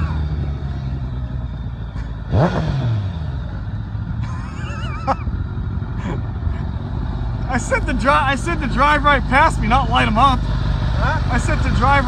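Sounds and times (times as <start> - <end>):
motorcycle engine at low revs: 0.0 - 12.0
tire squealing: 0.0 - 12.0.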